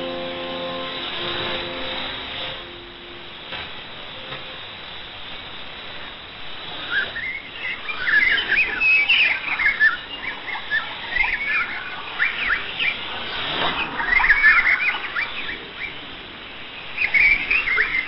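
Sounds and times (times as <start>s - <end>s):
birds chirping: 0.0s - 5.9s
radio reception hiss: 0.0s - 18.0s.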